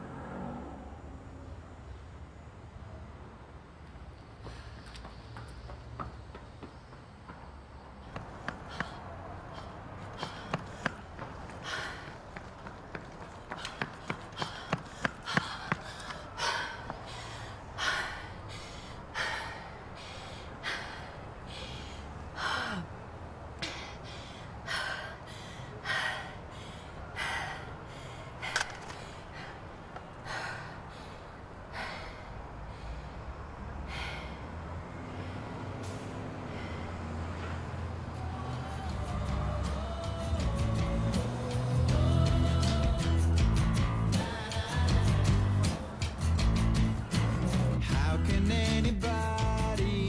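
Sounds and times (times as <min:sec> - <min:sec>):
footsteps running on pavement: 0:04.4 - 0:17.1
woman panting heavily: 0:08.1 - 0:12.5, 0:13.2 - 0:37.6.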